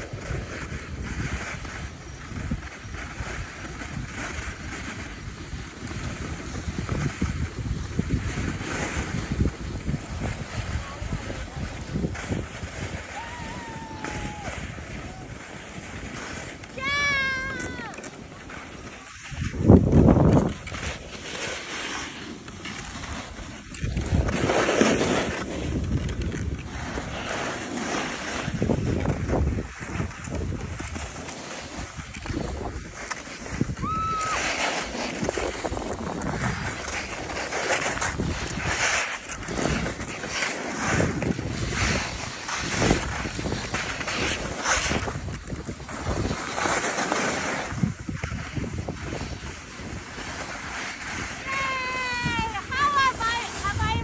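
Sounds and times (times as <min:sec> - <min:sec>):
wind buffeting microphone: 0:00.0 - 0:21.4, 0:22.7 - 0:54.0
board sliding over snow: 0:00.0 - 0:54.0.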